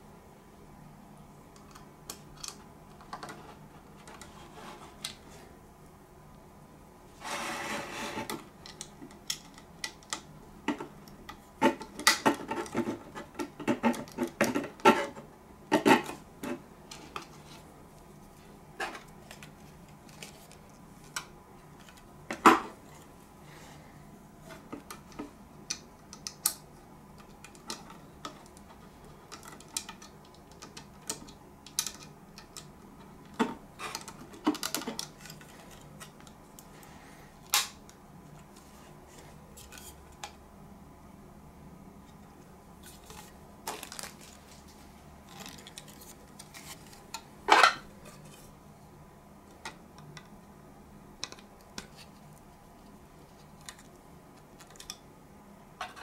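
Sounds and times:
packaging rustle: 42.8 - 47.0
hands handling plastic packaging: 42.8 - 48.3.

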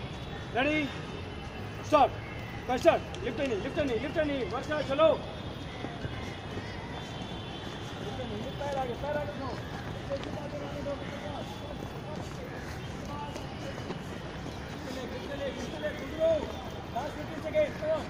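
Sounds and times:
distant voices: 0.0 - 18.0
footfalls of running athletes: 0.0 - 18.0
outdoor background noise: 0.0 - 18.0.

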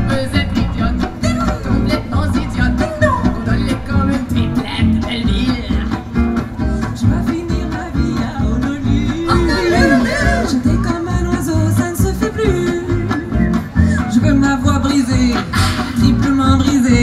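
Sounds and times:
strummed acoustic guitars: 0.0 - 17.0
upright bass line: 0.0 - 17.0.

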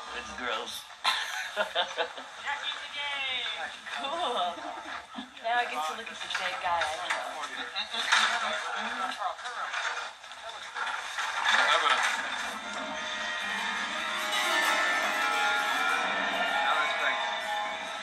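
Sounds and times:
people talking on television: 0.0 - 18.0
background music: 12.2 - 18.0.

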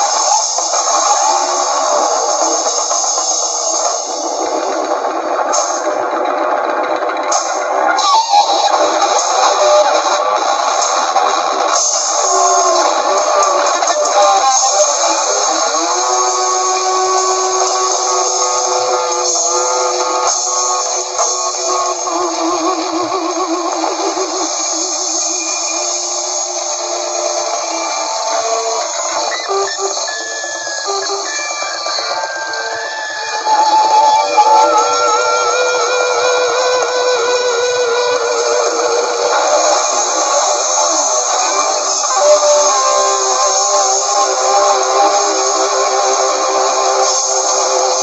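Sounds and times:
drums: 0.0 - 48.0
electric guitars wavering tones: 0.0 - 48.0.

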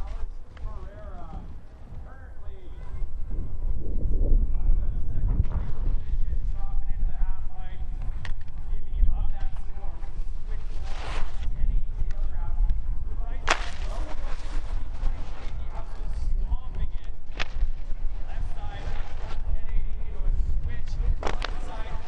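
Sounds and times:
skis rumbling over hard snow: 4.8 - 22.0
skis cracking against icy wall: 13.4 - 14.7.

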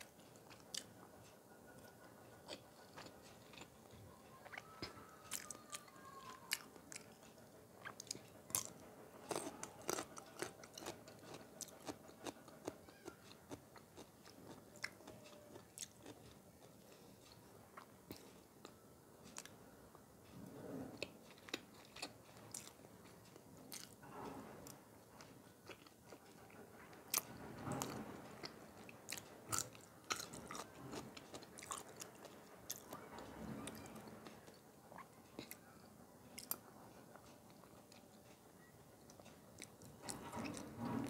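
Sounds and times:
wet chewing: 1.9 - 5.9, 6.5 - 18.8, 21.0 - 22.8, 25.2 - 33.0.

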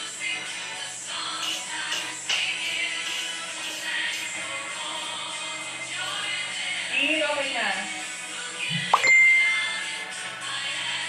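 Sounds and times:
background music: 0.0 - 11.0
bright ding: 8.9 - 9.8.

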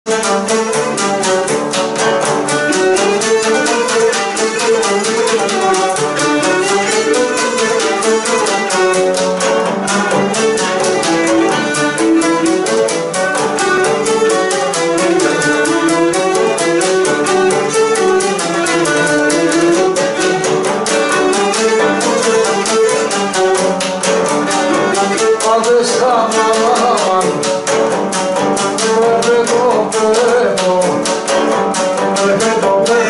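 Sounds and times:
bowed fiddle melody: 0.0 - 33.0
fast even beat: 0.1 - 33.0.

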